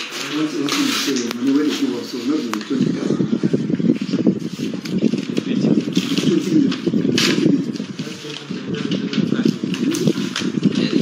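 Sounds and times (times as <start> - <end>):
paper leafed through: 0.0 - 11.0.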